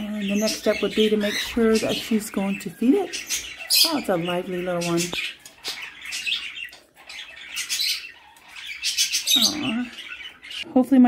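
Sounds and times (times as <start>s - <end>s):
parakeets chirping: 0.0s - 11.0s.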